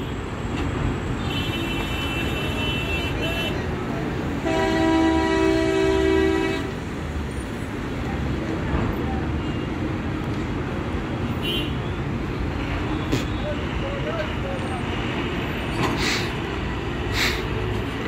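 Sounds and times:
rumble of engines: 0.0 - 18.0
horns honking: 1.2 - 3.7, 4.3 - 6.9, 11.3 - 15.9.

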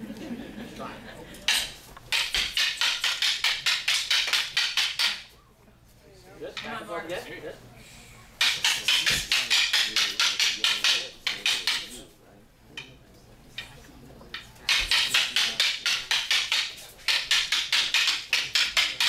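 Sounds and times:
wooden sticks clacking together: 1.5 - 5.3, 8.4 - 12.0, 12.8 - 19.0.

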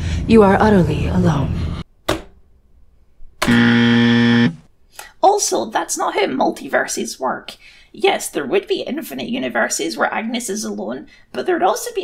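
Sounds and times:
harsh wrong answer buzzer: 3.4 - 4.7.

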